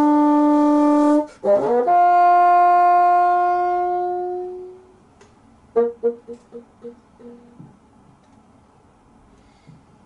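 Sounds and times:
bassoon holding long note: 0:00.0 - 0:04.9.

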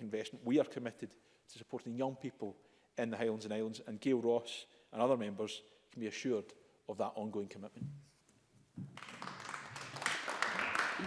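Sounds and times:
people applauding: 0:08.9 - 0:11.0.

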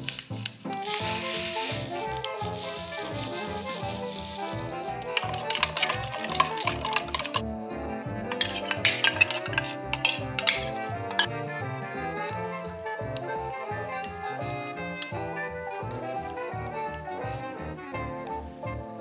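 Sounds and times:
background music with beat: 0:00.0 - 0:19.0
metal spoon clinking against glass: 0:08.3 - 0:11.3.

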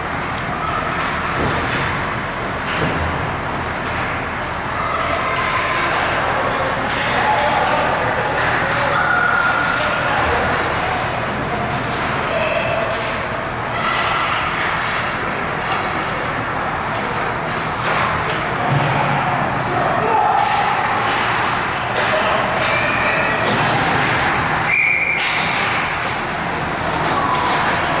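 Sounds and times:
players shouting: 0:19.0 - 0:25.5.

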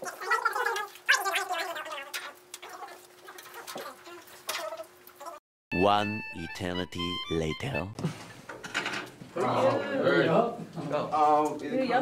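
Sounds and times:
garbled voice sounds: 0:00.0 - 0:03.0.

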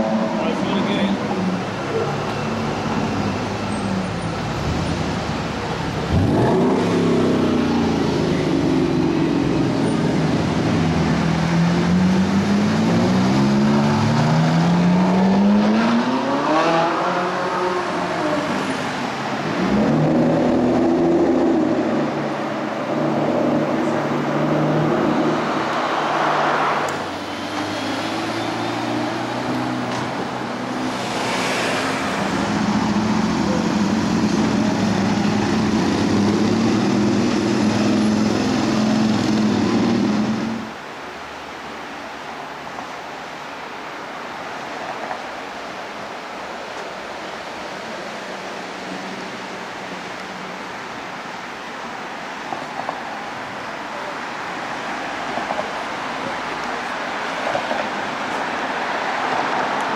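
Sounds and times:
cars whooshing by: 0:00.0 - 0:40.9, 0:54.2 - 0:59.9
traffic engines running: 0:00.0 - 0:59.9
car engine accelerating: 0:05.9 - 0:18.4.

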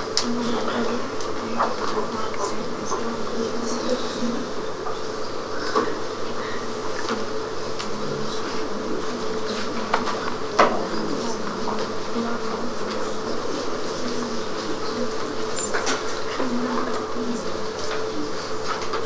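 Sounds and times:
buzzing electrical hum: 0:00.0 - 0:19.0.

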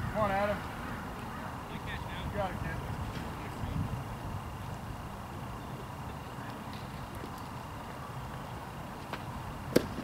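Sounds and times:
outdoor ballfield ambience: 0:00.0 - 0:10.0
baseball hitting catcher's mitt: 0:09.7 - 0:10.0.

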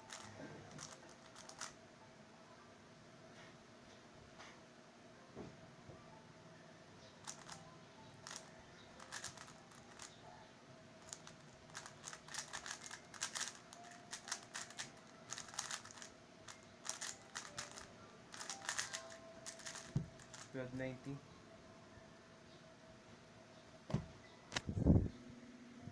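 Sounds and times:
plastic puzzle cube clicking: 0:00.1 - 0:01.8, 0:07.2 - 0:07.6, 0:08.2 - 0:10.1, 0:11.0 - 0:20.5.

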